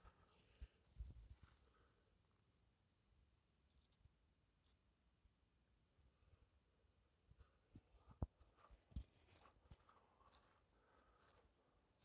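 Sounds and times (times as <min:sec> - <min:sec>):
faint high-pitched clicks: 0:03.7 - 0:04.9.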